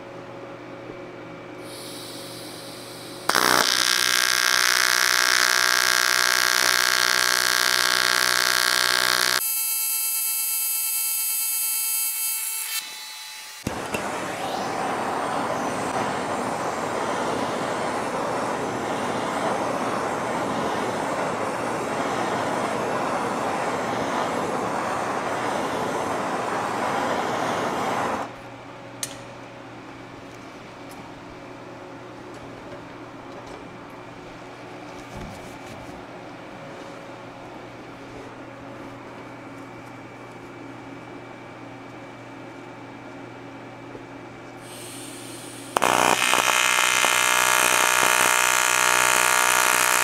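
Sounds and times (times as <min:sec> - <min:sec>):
gas torch hissing: 0:01.6 - 0:09.4, 0:13.6 - 0:28.3, 0:44.6 - 0:50.0
welding arc buzzing: 0:01.6 - 0:28.3, 0:44.6 - 0:50.0.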